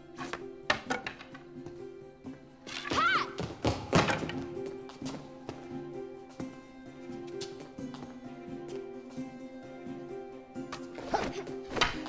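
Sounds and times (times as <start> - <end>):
film music: 0.0 - 12.0
wooden practice swords clacking: 0.3 - 1.5, 11.7 - 12.0.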